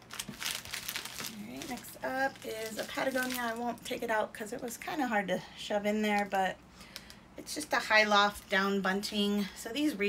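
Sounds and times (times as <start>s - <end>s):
plastic packaging crinkling: 0.0s - 4.1s.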